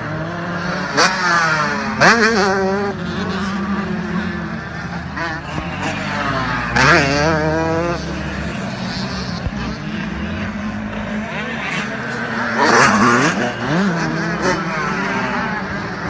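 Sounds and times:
dirt bike engines revving: 0:00.0 - 0:16.0.

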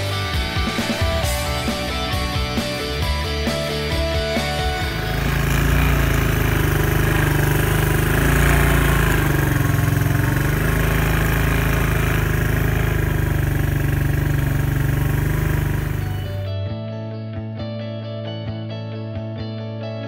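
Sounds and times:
atv engine running: 0:00.0 - 0:16.5.

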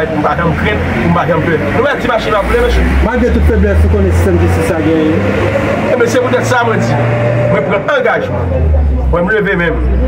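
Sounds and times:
low engine rumble: 0:00.0 - 0:10.0
man speaking forcefully: 0:00.0 - 0:10.0.

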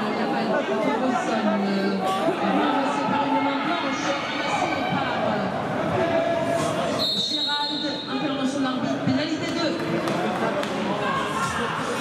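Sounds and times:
voices in indoor arena: 0:00.0 - 0:12.0.

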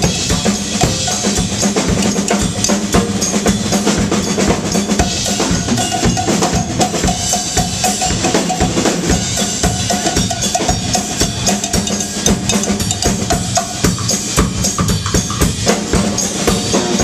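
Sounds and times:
funk drum kit groove: 0:00.0 - 0:17.0
cowbell struck with a stick: 0:00.8 - 0:03.9, 0:04.9 - 0:15.6.

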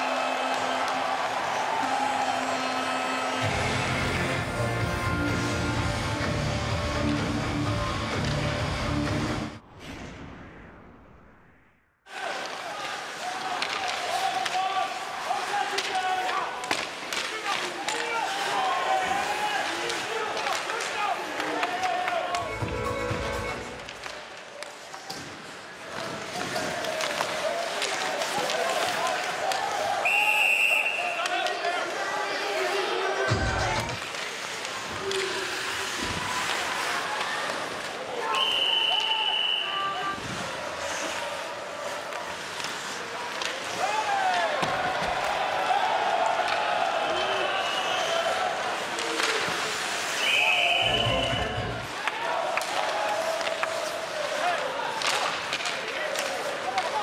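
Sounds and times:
crowd din: 0:25.9 - 0:39.6
referee whistle blasts: 0:30.0 - 0:31.2, 0:38.3 - 0:39.9, 0:50.2 - 0:51.7.

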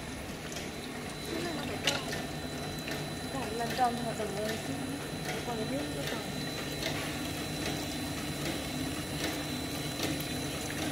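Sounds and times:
machine humming: 0:00.0 - 0:10.9.

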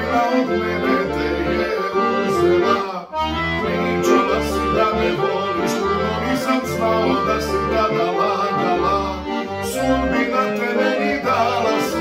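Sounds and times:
piano accordion folk tune: 0:00.0 - 0:12.0.

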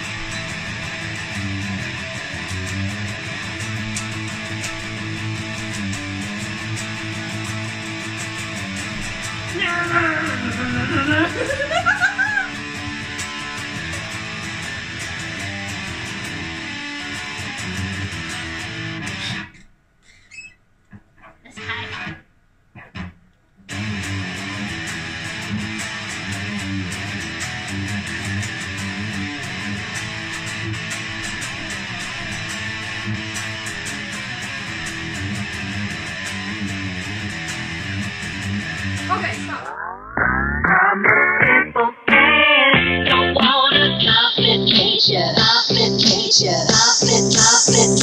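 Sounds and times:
electric guitar playing: 0:00.0 - 0:19.6, 0:21.2 - 0:22.2, 0:23.7 - 0:48.0.

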